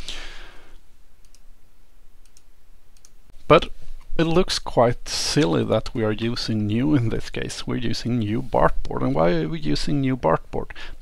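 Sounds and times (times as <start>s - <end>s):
breath out: 0.0s - 0.8s
computer clicks: 1.2s - 1.4s, 2.2s - 3.2s.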